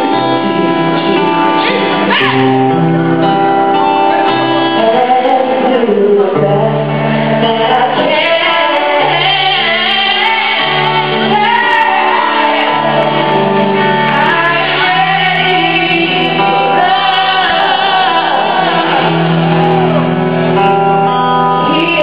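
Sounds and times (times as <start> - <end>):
live band playing: 0.0 - 22.0
woman singing soul ballad: 4.6 - 20.0, 21.1 - 22.0.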